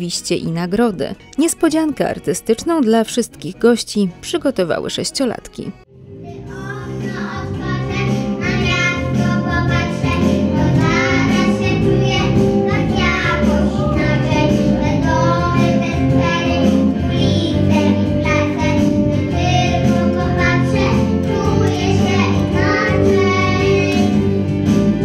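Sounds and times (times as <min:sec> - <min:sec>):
instrumental accompaniment: 0:00.0 - 0:25.0
children singing into microphone: 0:06.5 - 0:24.4.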